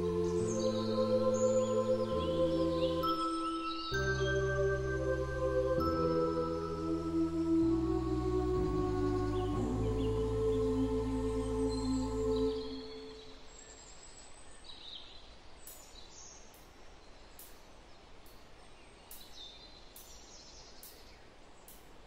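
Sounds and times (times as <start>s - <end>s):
sustained ambient music tones: 0.0s - 13.4s
faint outdoor nature ambience: 0.0s - 22.0s.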